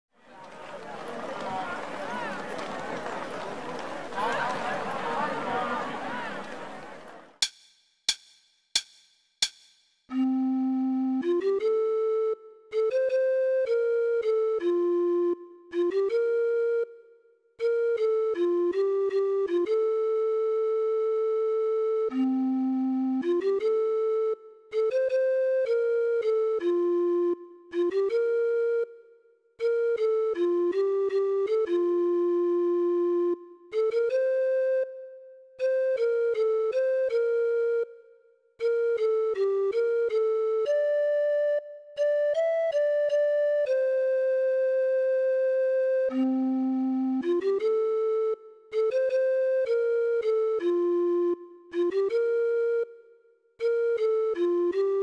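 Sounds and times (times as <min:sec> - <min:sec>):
recorder melody: 0:10.1 - 0:29.0, 0:29.6 - 0:55.0.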